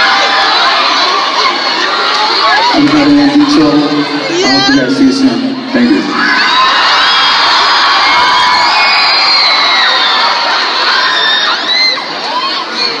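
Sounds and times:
audience screaming: 0:00.0 - 0:13.0.

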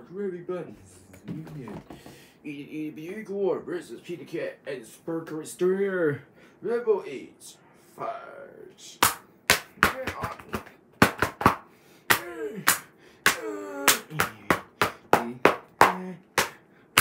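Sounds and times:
man's wordless vocal sounds: 0:00.6 - 0:02.1, 0:12.1 - 0:16.5
sharp slaps and claps: 0:09.0 - 0:17.0.

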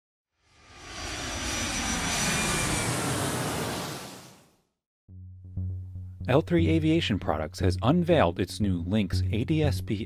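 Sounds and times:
airplane flying past: 0:00.4 - 0:04.6.

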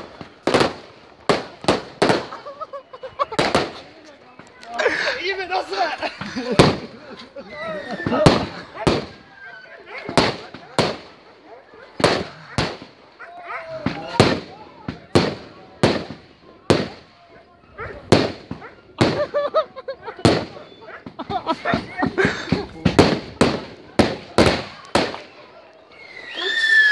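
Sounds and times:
firework bangs: 0:00.0 - 0:04.0, 0:05.6 - 0:07.0, 0:07.9 - 0:09.4, 0:10.0 - 0:17.2, 0:18.0 - 0:19.5, 0:20.2 - 0:25.5
people's voices: 0:00.0 - 0:26.9.

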